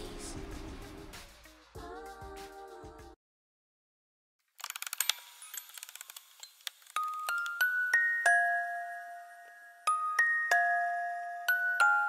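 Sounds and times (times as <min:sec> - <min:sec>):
music box ratchet clicking: 0:04.6 - 0:08.3.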